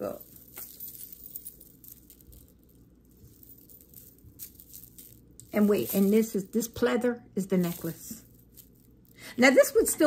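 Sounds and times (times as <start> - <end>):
beads and chains clicking: 0.0 - 6.8, 7.5 - 9.8.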